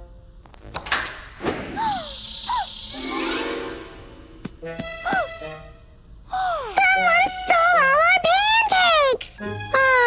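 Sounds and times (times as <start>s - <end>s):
soft cartoon music: 2.9s - 10.0s
high wordless voice wailing: 6.4s - 10.0s.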